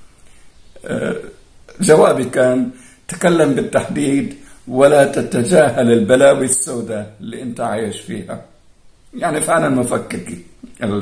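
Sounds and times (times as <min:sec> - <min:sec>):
man's throaty vocal sound: 0:00.8 - 0:01.8
man speaking: 0:00.8 - 0:08.5, 0:09.1 - 0:11.0.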